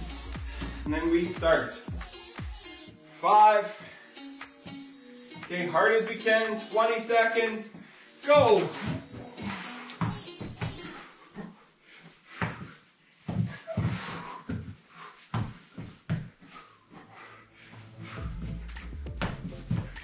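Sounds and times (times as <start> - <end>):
background music: 0.0 - 10.6, 17.2 - 20.0
shoes scuffing: 7.8 - 10.8, 12.3 - 16.6, 17.8 - 20.0
body thudding on gym mats: 12.3 - 16.7.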